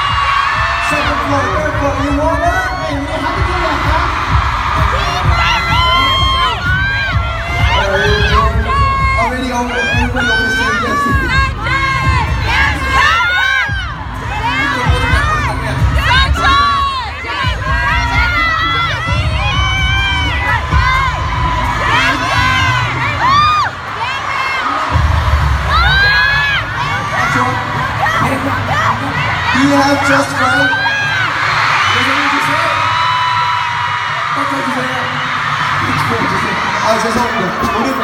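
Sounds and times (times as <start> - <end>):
crowd screaming and cheering: 0.0 - 38.0.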